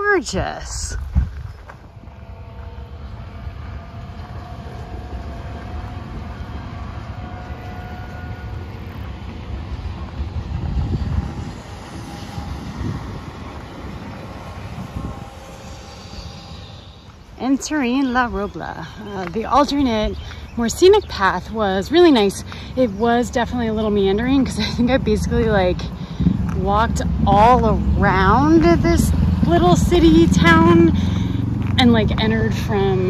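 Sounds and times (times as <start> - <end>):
passenger train passing: 0.0 - 33.0.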